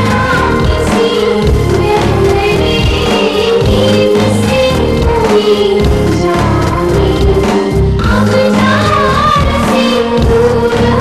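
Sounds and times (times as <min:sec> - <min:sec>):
chorus singing: 0:00.0 - 0:11.0.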